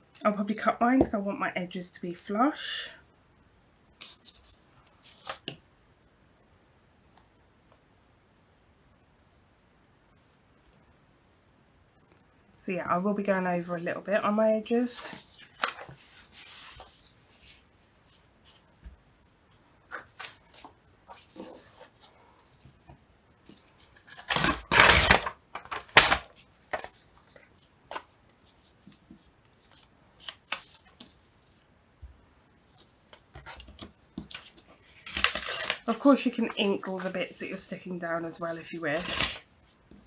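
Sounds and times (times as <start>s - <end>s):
paper rustling: 12.8s - 31.6s, 32.6s - 40.0s
paper tearing: 24.0s - 26.3s, 32.7s - 37.1s, 38.9s - 39.5s.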